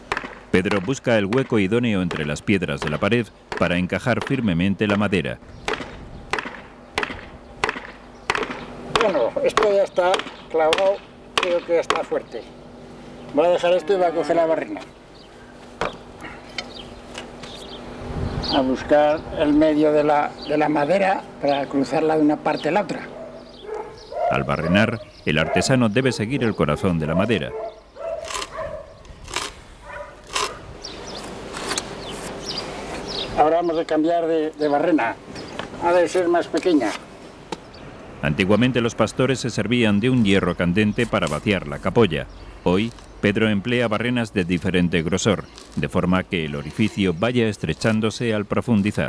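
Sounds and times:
hand auger scraping wood: 0:30.2 - 0:33.1.

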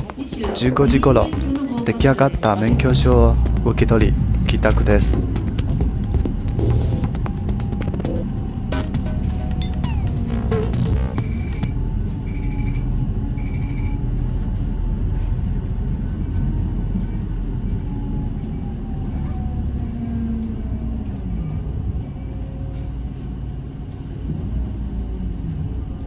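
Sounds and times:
bus engine and road rumble: 0:00.0 - 0:26.0.

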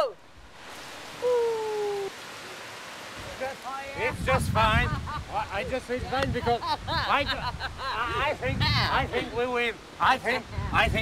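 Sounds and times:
fountain water rushing hiss: 0:00.0 - 0:11.0.

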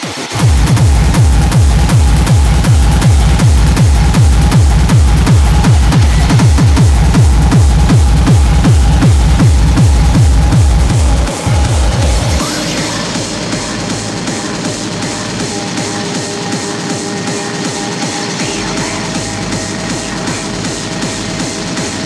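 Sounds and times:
distorted kick drum: 0:00.0 - 0:22.0.

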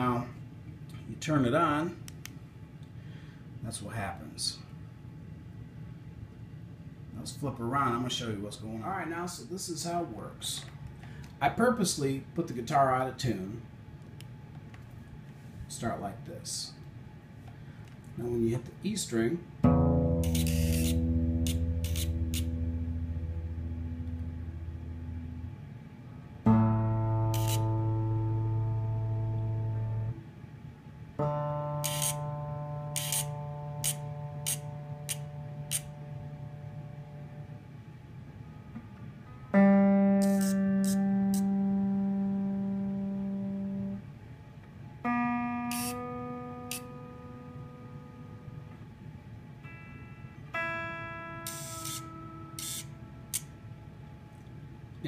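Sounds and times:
motorised tuner whirs: 0:16.9 - 0:55.0
electric guitar strings plucked: 0:19.6 - 0:30.2, 0:31.2 - 0:37.6, 0:38.7 - 0:44.1, 0:45.0 - 0:49.0, 0:49.6 - 0:53.8.

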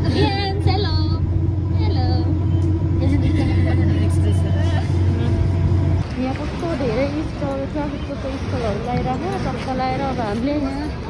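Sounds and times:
vehicle engine droning: 0:00.0 - 0:11.0.

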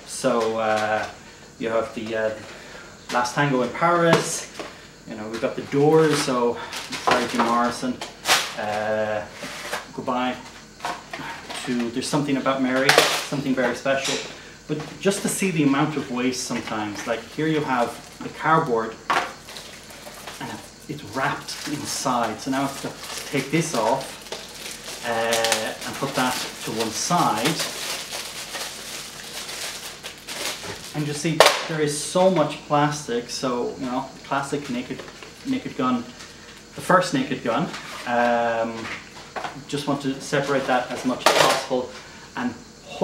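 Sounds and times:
handling cassettes and plastic bag: 0:06.0 - 0:09.8, 0:19.4 - 0:31.7
plastic wrap crinkling: 0:19.4 - 0:31.7.

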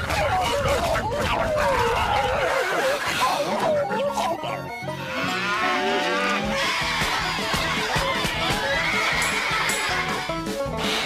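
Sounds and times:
cattle mooing: 0:03.0 - 0:06.8.

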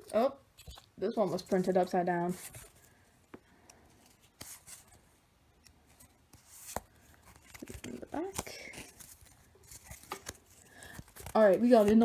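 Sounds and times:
cards and wrapper rustling: 0:00.0 - 0:12.0.

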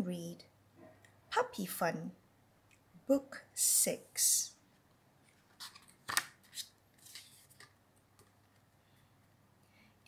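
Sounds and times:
book pages flapping and rustling: 0:05.2 - 0:08.7.

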